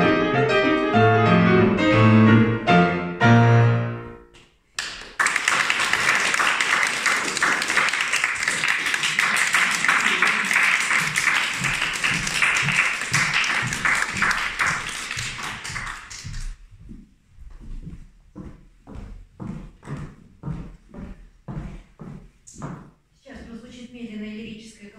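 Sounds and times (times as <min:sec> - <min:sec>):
piano piece: 0:00.0 - 0:04.4, 0:10.8 - 0:16.6
audience applauding: 0:04.8 - 0:16.6.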